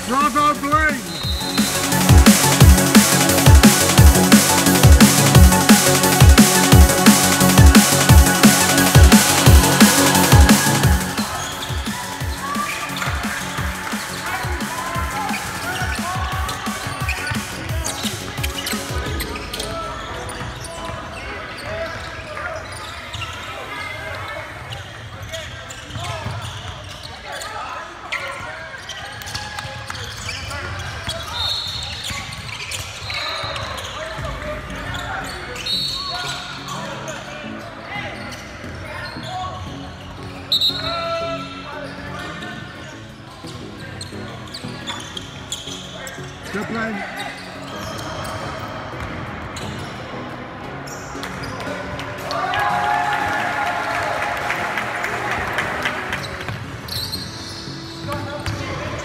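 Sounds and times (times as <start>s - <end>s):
voices echoing in gym: 0.0s - 3.7s, 8.8s - 59.0s.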